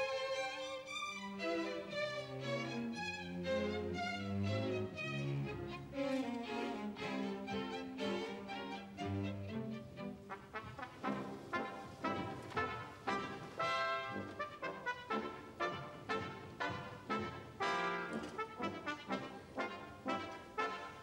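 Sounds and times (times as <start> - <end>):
orchestral ballet music with brass: 0.0 - 21.0.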